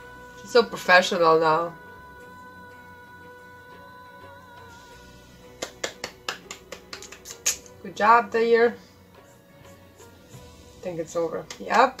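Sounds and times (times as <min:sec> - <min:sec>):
music holding a sustained note: 0:00.0 - 0:12.0
sharp hand claps: 0:05.6 - 0:07.8, 0:11.4 - 0:11.8.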